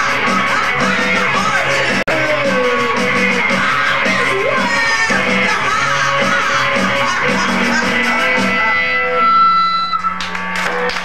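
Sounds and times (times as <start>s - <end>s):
rock band playing droning notes: 0.0s - 11.0s.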